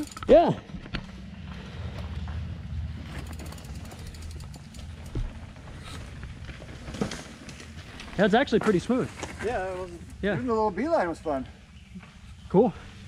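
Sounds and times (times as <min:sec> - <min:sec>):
bike freehub ticking: 0:00.0 - 0:00.4, 0:03.1 - 0:05.3
bike tyres rumbling on dirt: 0:00.3 - 0:10.0.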